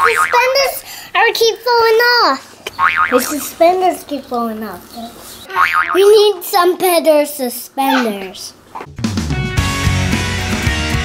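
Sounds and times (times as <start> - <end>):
young child talking: 0.1 - 2.5, 3.1 - 8.6.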